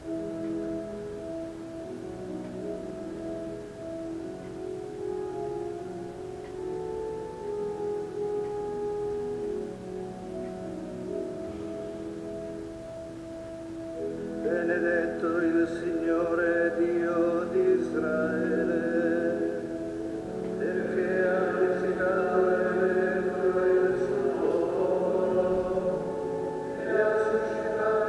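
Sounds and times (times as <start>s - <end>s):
organ playing sustained chords: 0.0s - 28.0s.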